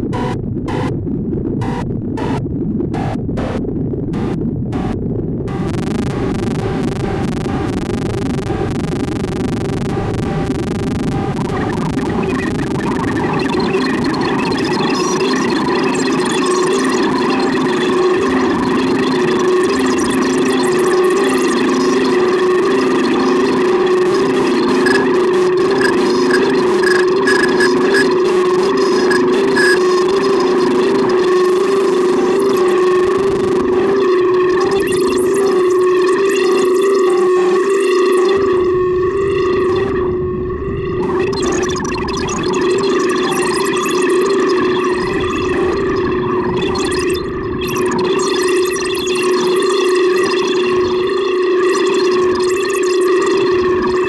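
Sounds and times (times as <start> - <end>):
low rumble: 0.0 - 12.0
synthesizer drone: 4.2 - 54.0
shifting synth textures: 19.2 - 38.5
low pulsing synth note: 19.5 - 41.2.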